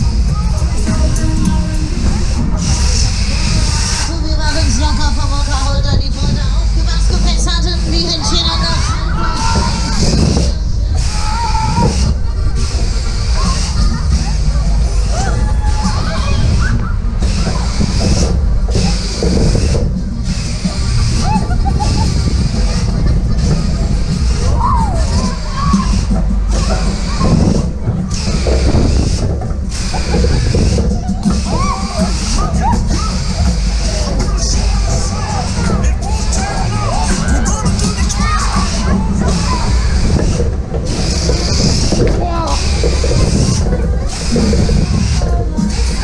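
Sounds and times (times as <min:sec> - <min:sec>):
fairground music: 0:00.0 - 0:46.0
ride low rumble: 0:00.0 - 0:46.0
rushing wind noise: 0:00.0 - 0:46.0
voices: 0:00.0 - 0:46.0.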